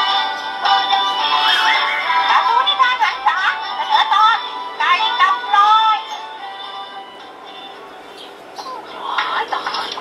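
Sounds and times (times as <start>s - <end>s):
cartoon soundtrack from small speaker: 0.1s - 6.9s.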